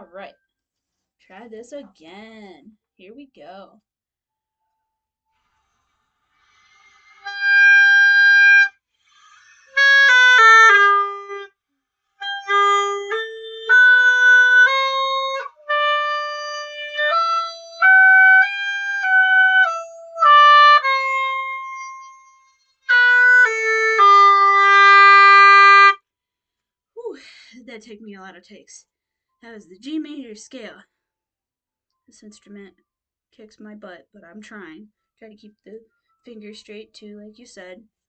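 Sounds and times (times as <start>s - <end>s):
oboe playing a scale: 7.1s - 8.7s, 9.4s - 11.5s, 12.2s - 26.0s.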